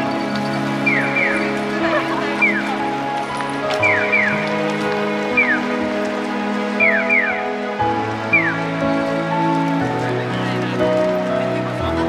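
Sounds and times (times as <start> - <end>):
music of long held chords: 0.0 - 12.0
electronic bird-chirp tones: 0.8 - 1.4.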